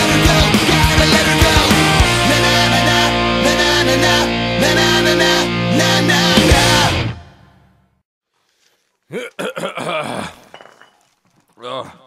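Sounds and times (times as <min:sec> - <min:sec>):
person's wordless vocal sound: 0:09.0 - 0:10.5, 0:11.6 - 0:12.0.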